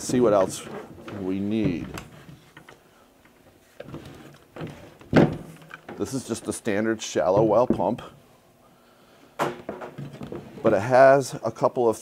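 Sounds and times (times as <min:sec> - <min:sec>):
loud thump of pump set down: 0:05.1 - 0:05.6, 0:09.4 - 0:10.4.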